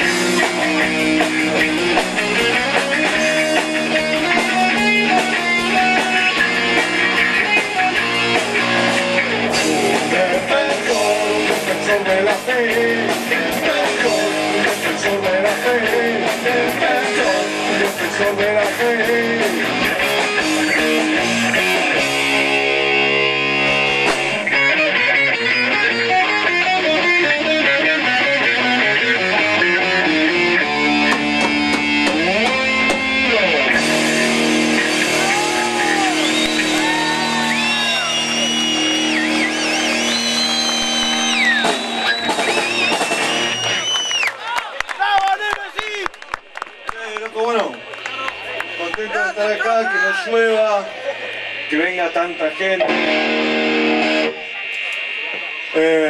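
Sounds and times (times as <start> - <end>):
electric guitar bending held notes: 0.0 - 44.0, 47.8 - 56.0
rock band playing: 0.0 - 44.4, 45.0 - 56.0.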